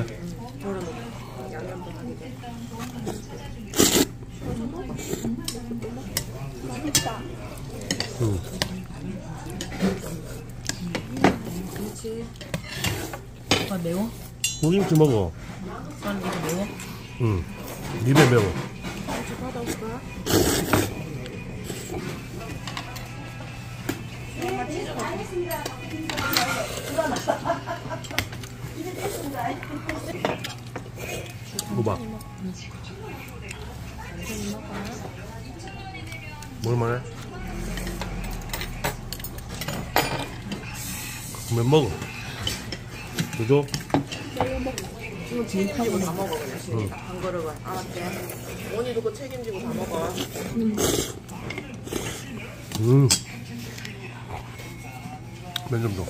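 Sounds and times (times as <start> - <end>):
faint voices: 15.4 - 56.0.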